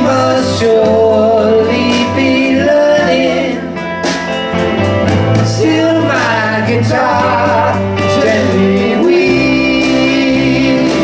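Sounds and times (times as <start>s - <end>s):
person singing: 0.0s - 4.0s, 5.3s - 11.0s
drum kit: 0.0s - 11.0s
electric guitars: 0.0s - 11.0s
keyboard: 0.0s - 11.0s.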